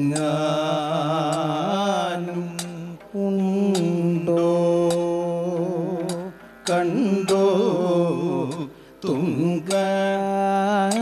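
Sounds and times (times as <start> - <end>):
sharp percussive strikes: 0.0 - 8.7
man singing long ornamented notes: 0.0 - 11.0.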